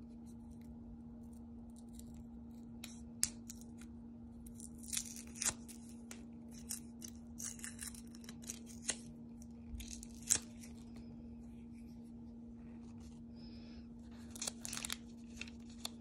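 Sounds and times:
low hum: 0.0 - 16.0
paper scratching and crackling: 1.7 - 11.1, 14.0 - 16.0.

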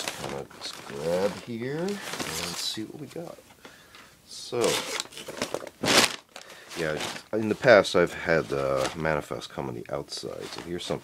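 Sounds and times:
paper bag crinkling: 0.0 - 2.8, 4.6 - 9.2, 10.1 - 11.0.

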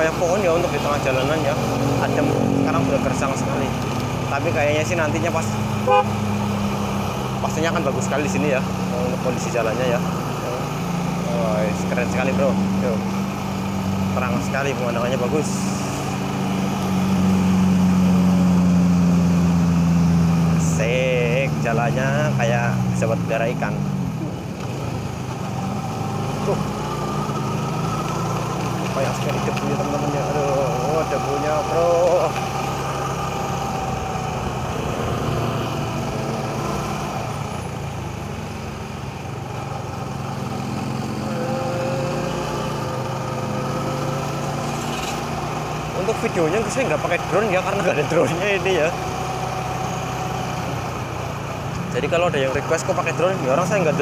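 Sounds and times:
motorcycle engine running: 0.0 - 54.0
road and wind noise: 0.0 - 54.0.

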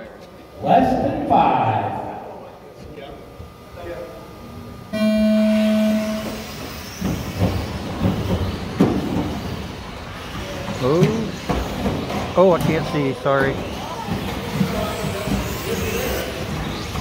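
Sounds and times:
electronic start tone: 4.9 - 6.6
electric rc cars racing: 5.0 - 17.0.

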